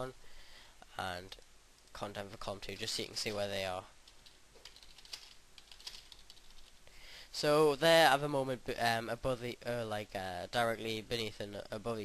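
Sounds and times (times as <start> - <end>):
keyboard typing: 4.0 - 6.8.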